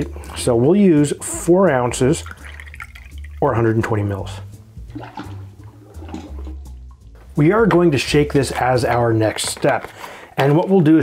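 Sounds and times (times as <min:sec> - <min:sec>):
cider pouring over ice: 0:01.8 - 0:04.2, 0:04.9 - 0:06.8.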